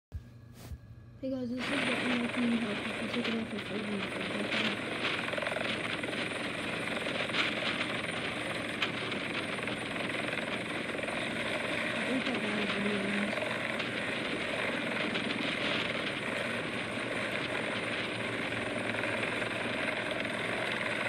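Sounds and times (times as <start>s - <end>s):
helicopter rotor and turbine: 1.3s - 21.0s.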